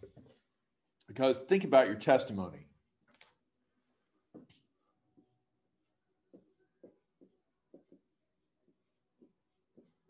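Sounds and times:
marker writing on whiteboard: 0.0 - 0.8, 3.3 - 10.0.

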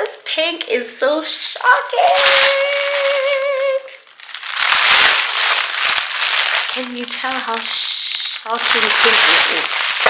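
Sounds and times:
plastic garment bag crinkling: 1.6 - 10.0
woman singing high ooh: 2.0 - 4.0.

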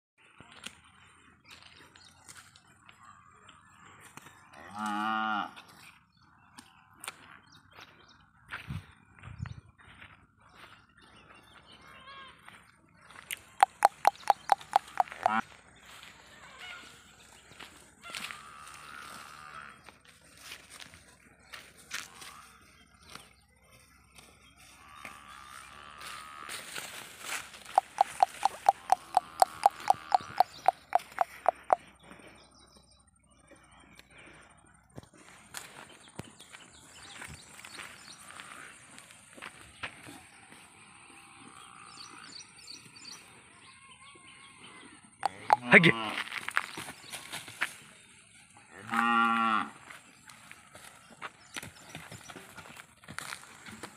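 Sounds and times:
bird calling in sharp calls: 13.6 - 15.4, 27.6 - 31.8, 45.2 - 45.9
cow mooing: 28.0 - 31.0.

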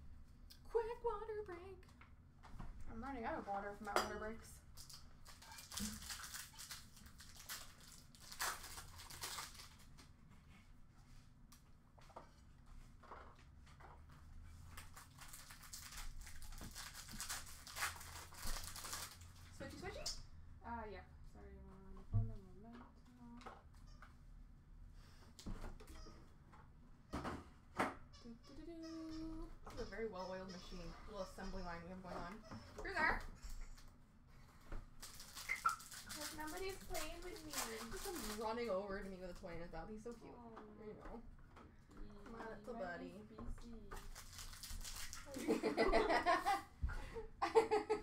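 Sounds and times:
trading cards rustling: 4.8 - 10.0, 14.8 - 19.4, 35.0 - 38.7, 43.9 - 45.5.

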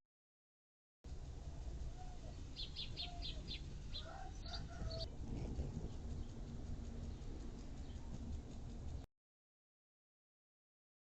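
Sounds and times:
low rumble: 1.1 - 9.1
bird chirping: 1.9 - 8.5.

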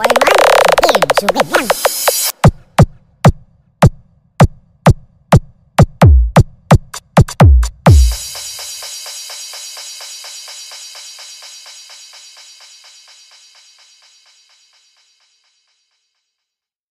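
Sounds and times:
deep electronic kick drum: 1.6 - 11.0
electronic snare roll: 7.9 - 15.8.

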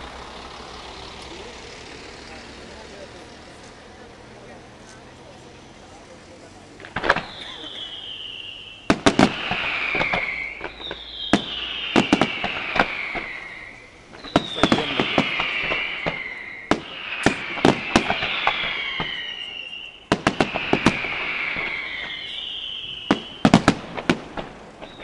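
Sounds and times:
falling firework whistle: 6.8 - 25.0
firework shells bursting: 6.8 - 25.0.

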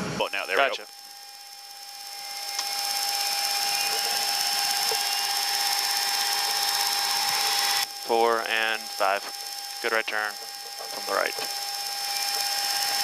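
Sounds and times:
jet engine whine and hiss: 0.0 - 13.0.

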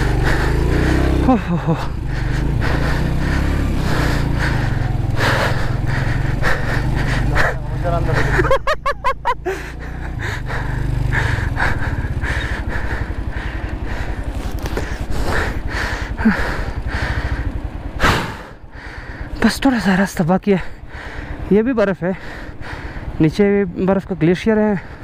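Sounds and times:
motorcycle engine running slowly: 0.0 - 25.0.

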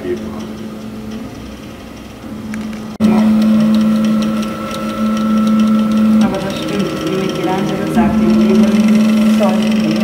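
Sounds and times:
printer motors humming: 0.2 - 10.0.

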